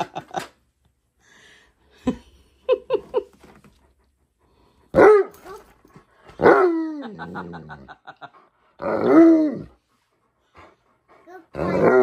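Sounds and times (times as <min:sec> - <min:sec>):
large dog barking: 0:04.9 - 0:05.4, 0:06.4 - 0:07.0.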